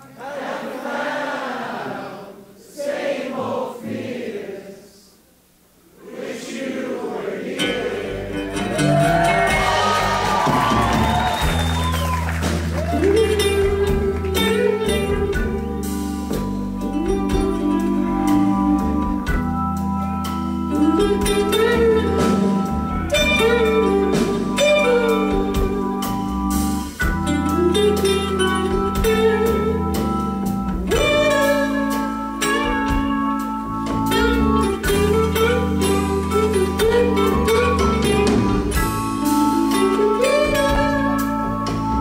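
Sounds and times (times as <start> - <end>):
held organ chords: 7.6 - 42.0
slow bending lead guitar: 7.6 - 42.0.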